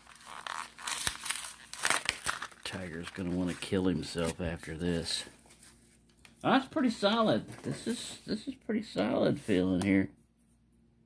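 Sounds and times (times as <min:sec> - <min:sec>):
plastic packaging crinkling and tearing: 0:00.0 - 0:06.1.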